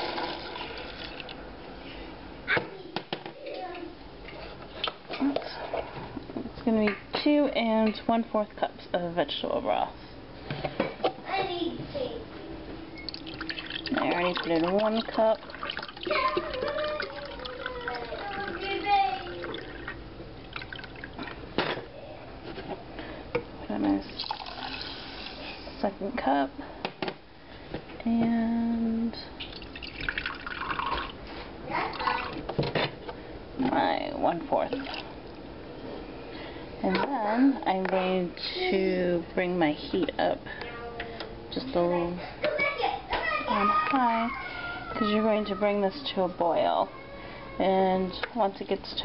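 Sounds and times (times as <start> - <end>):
liquid pouring into a glass cup: 13.0 - 21.2, 24.1 - 25.3, 29.4 - 31.2.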